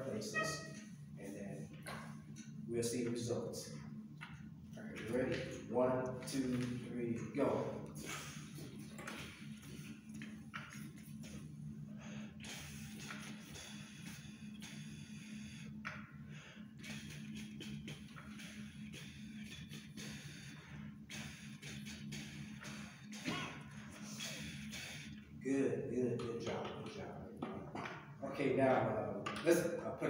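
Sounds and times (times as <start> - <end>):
steady low hum: 0.0 - 30.0
breath blown through brass instruments: 11.9 - 25.3.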